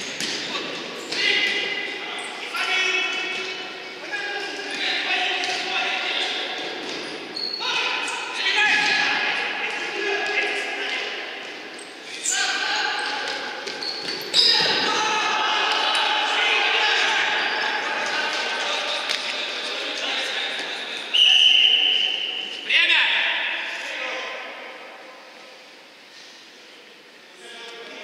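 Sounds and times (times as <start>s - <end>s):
players shouting in echoing hall: 0.0s - 26.0s.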